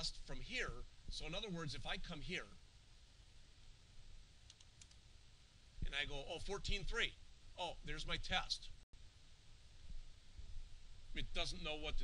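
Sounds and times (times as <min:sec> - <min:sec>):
computer keyboard keystrokes: 0:04.5 - 0:05.0.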